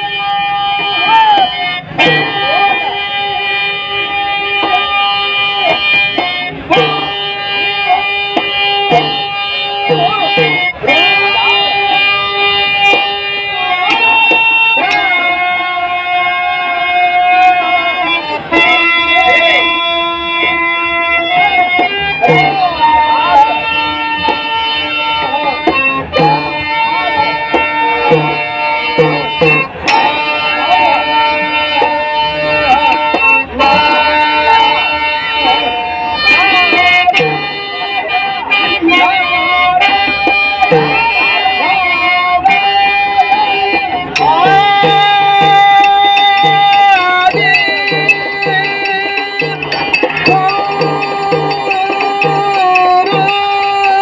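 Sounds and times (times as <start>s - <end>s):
harmonium sustained notes: 0.0s - 54.0s
person singing gliding notes: 0.0s - 54.0s
hand drum strokes: 0.8s - 3.4s, 5.6s - 15.3s, 21.4s - 34.8s, 36.2s - 38.0s, 39.9s - 41.7s, 43.6s - 54.0s.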